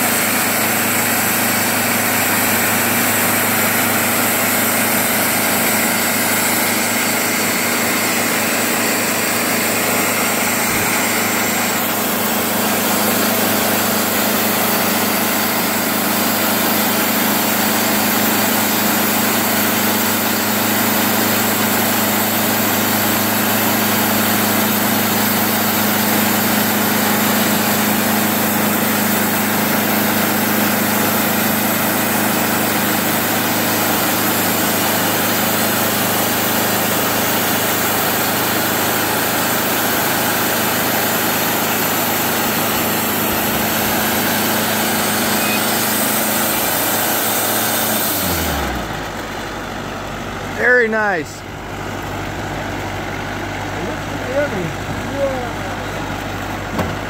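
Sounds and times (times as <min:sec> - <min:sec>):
band sawmill cutting timber: 0:00.0 - 0:57.0.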